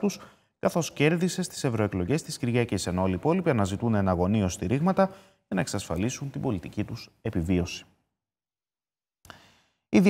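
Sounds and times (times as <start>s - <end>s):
man speaking: 0.0s - 7.9s
man breathing in: 9.3s - 9.9s.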